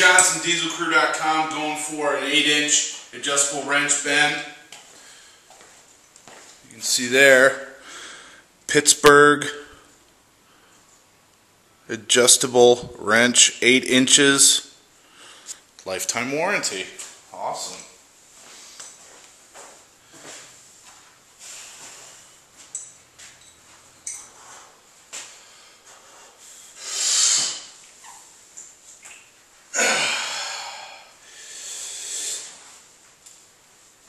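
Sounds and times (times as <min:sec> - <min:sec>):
man breathing hard: 0:07.8 - 0:08.5, 0:29.8 - 0:32.6.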